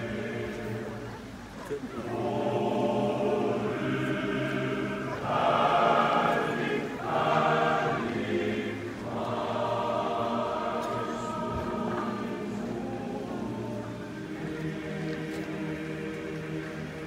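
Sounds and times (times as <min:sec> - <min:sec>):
male choir singing unaccompanied: 0:00.0 - 0:17.0.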